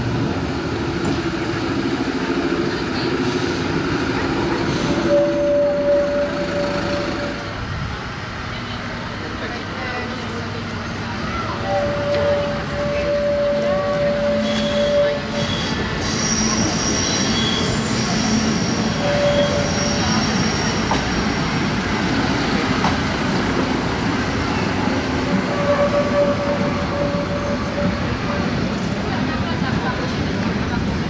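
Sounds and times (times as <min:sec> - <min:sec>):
railcar diesel engine running: 0:00.0 - 0:31.0
high wheel squeals: 0:04.8 - 0:07.4, 0:11.4 - 0:21.8, 0:24.5 - 0:29.0.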